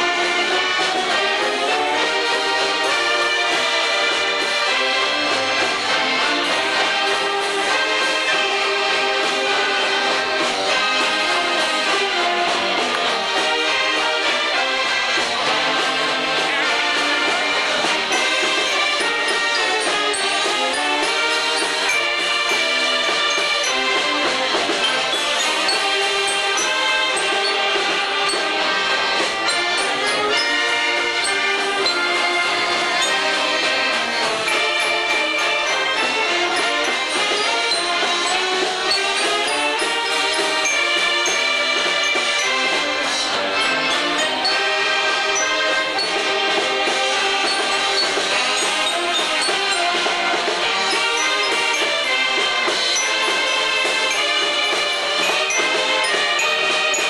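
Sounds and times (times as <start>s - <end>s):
banjos and string basses: 0.0s - 57.0s
saxophones and accordions melody: 0.0s - 57.0s
string band playing: 0.0s - 57.0s.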